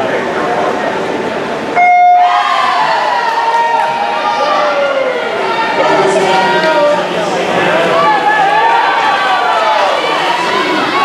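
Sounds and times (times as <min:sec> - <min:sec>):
crowd chatter: 0:00.0 - 0:11.0
crowd shouting and cheering: 0:00.0 - 0:11.0.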